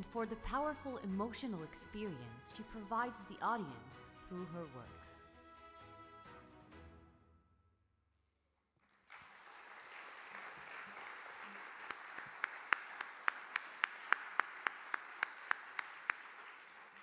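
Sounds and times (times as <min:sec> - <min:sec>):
audience applause: 0:08.8 - 0:17.0
person clapping near microphone: 0:09.0 - 0:17.0.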